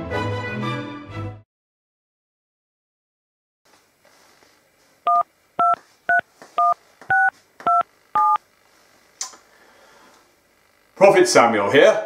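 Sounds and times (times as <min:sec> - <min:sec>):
phone keypad tones: 0:05.1 - 0:08.4.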